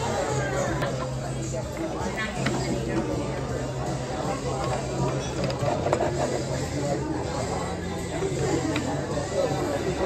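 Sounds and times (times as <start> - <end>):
indistinct chatter: 0.0 - 10.0
plates and cutlery clattering: 4.6 - 6.5.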